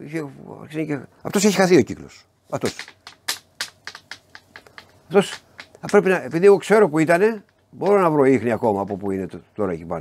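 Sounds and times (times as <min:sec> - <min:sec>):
light sharp clicks: 0:02.6 - 0:06.2.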